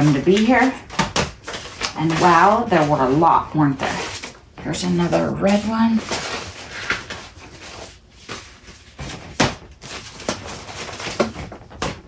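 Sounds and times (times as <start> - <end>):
paper and card slapping: 0.0 - 12.0
papers rustling: 0.0 - 12.0.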